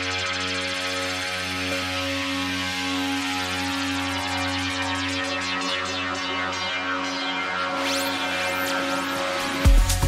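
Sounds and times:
electronic dance music: 7.7s - 10.0s.

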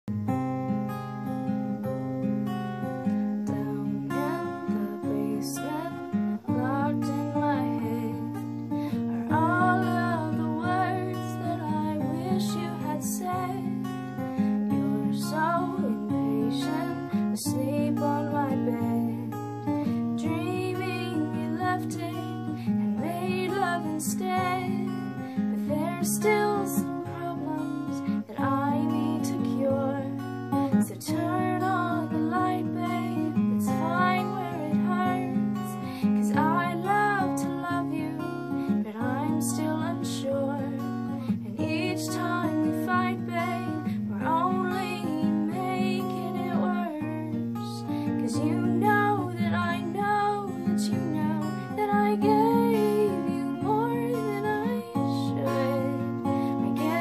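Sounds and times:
acoustic guitar chords: 0.0s - 57.0s
woman singing: 2.5s - 57.0s.

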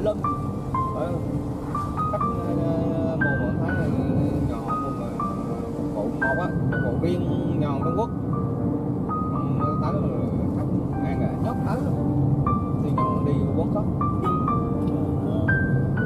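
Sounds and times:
slow background music: 0.0s - 16.0s.

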